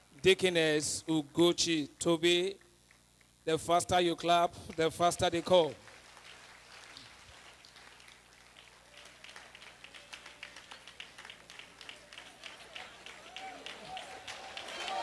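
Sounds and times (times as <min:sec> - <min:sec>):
congregation clapping: 0:04.6 - 0:15.0.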